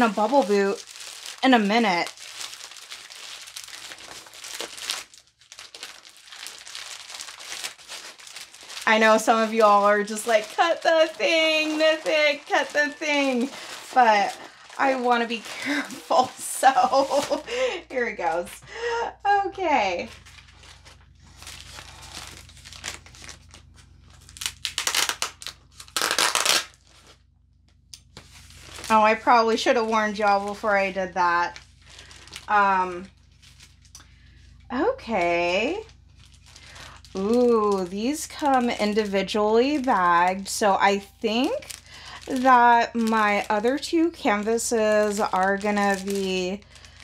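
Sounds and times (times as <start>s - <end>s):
plastic packaging ripping: 0.0s - 17.8s, 20.0s - 27.2s, 28.0s - 34.0s, 35.3s - 47.0s
bubble wrap crinkling: 0.0s - 47.0s.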